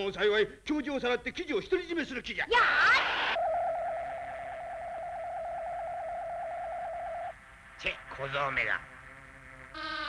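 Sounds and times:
warbling electronic tone: 3.3s - 7.3s.

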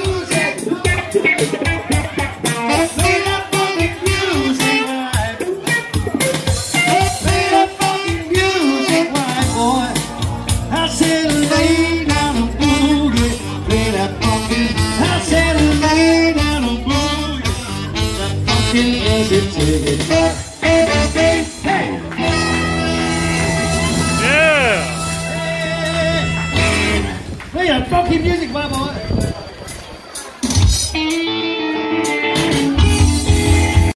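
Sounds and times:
electric guitar: 0.0s - 27.5s, 30.4s - 33.9s
saxophone melody: 0.6s - 5.2s, 6.1s - 9.5s, 15.9s - 21.6s, 22.2s - 27.0s.

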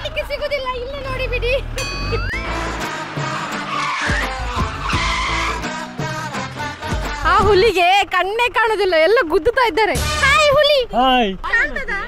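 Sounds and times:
car engine whine: 0.0s - 12.0s
background music: 1.7s - 8.4s.

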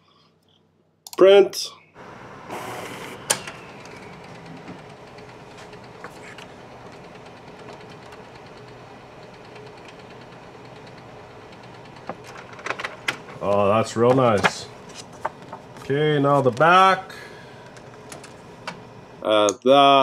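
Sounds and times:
printer mechanical whir: 2.0s - 19.4s
sharp printer click: 2.5s - 6.0s.

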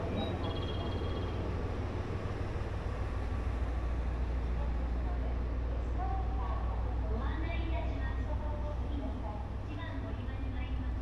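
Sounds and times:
hum of standing trains: 0.0s - 11.0s.

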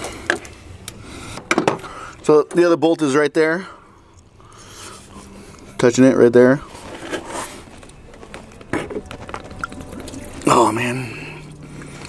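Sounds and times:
hand rustling and scraping: 4.7s - 10.9s.

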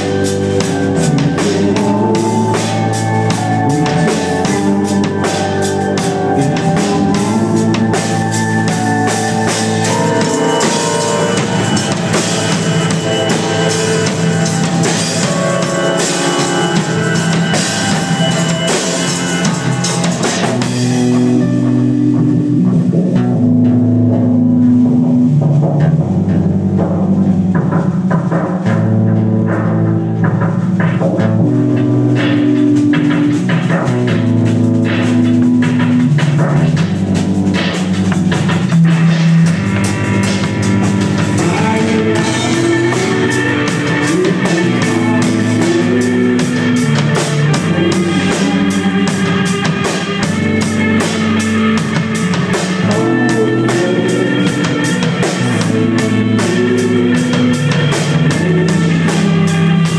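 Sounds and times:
bass guitar: 0.0s - 59.9s
drum kit: 0.0s - 59.9s
electric guitars: 0.0s - 59.9s
keyboard: 0.0s - 59.9s
rock band playing: 0.0s - 59.9s
violin: 32.1s - 59.9s.

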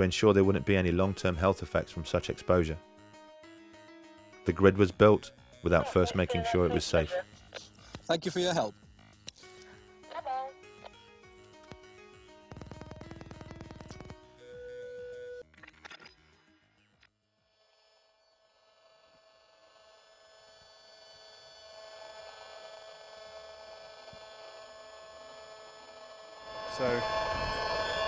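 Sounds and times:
electronic buzz of steady tones: 11.6s - 15.4s, 17.4s - 28.0s.

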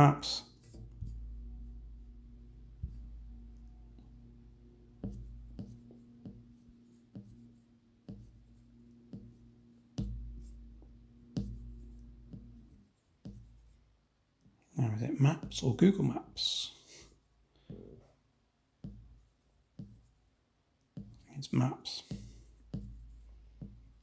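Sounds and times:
low steady hum: 0.0s - 24.0s.

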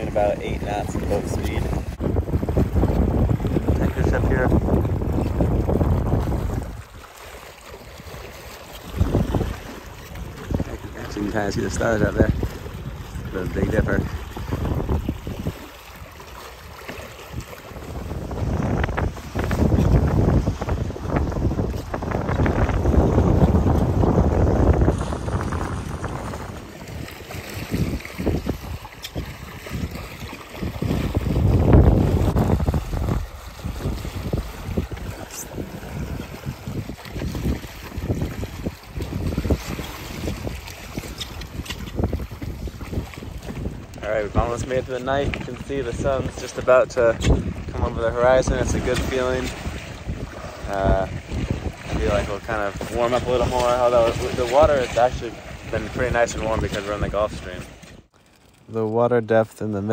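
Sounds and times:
wind rushing over microphone: 0.0s - 7.0s, 8.8s - 58.1s
water washing along hulls: 0.0s - 59.9s.

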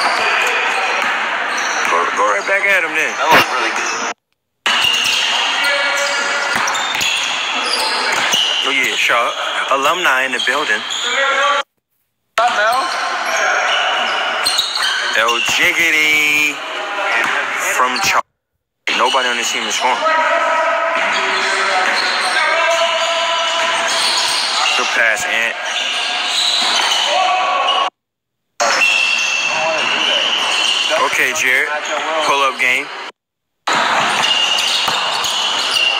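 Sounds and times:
players shouting: 4.7s - 11.6s, 19.0s - 27.9s, 28.6s - 32.8s.

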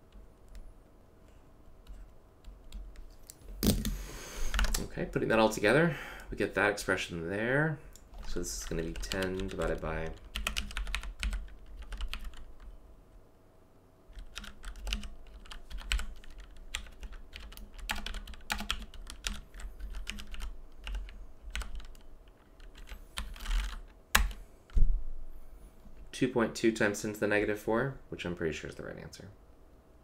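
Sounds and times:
typing on keyboard: 8.2s - 12.7s, 14.1s - 24.4s.

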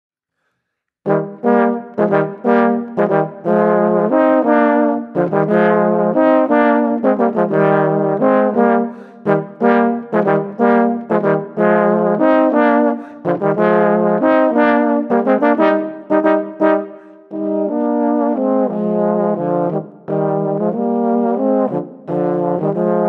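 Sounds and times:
tenor horns playing in harmony: 1.1s - 23.0s.

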